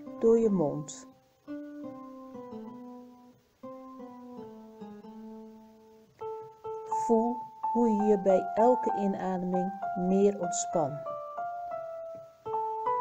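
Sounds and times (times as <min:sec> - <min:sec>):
soft keyboard meditation music: 0:00.0 - 0:13.0.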